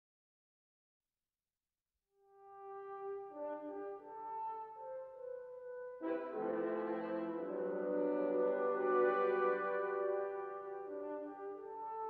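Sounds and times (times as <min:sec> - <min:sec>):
brass fanfare: 0:02.5 - 0:12.0.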